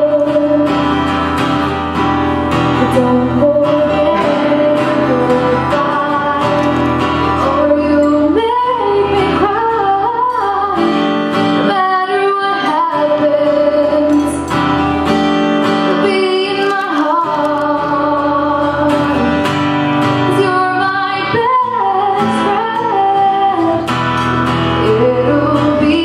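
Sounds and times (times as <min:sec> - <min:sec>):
strummed acoustic guitar: 0:00.0 - 0:26.0
woman singing: 0:00.0 - 0:26.0.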